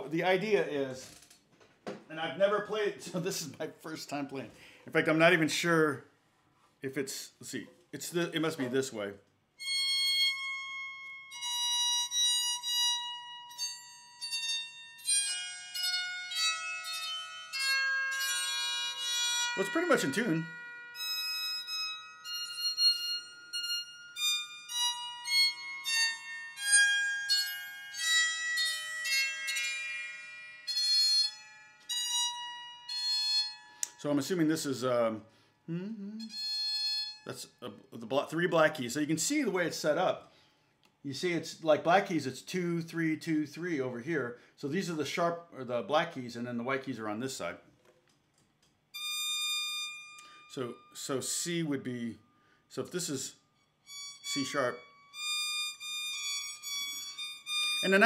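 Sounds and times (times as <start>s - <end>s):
bowed psaltery notes: 9.6s - 35.0s, 53.2s - 58.0s.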